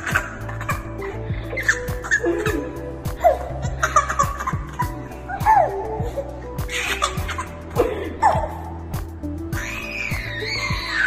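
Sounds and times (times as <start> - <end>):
people laughing and giggling: 0.0 - 8.8
background music with beat: 0.0 - 11.0.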